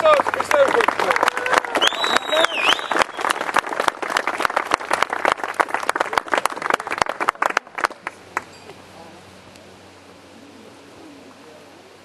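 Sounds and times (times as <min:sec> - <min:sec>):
audience clapping: 0:00.0 - 0:08.5.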